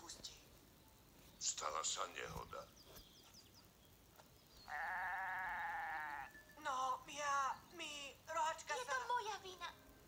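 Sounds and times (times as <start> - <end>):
goat bleating: 4.7 - 6.3.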